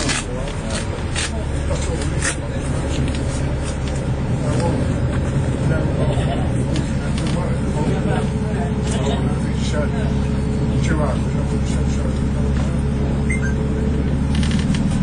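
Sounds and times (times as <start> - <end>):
bus engine drone: 0.0 - 15.0
tyre noise on wet road: 14.1 - 15.0.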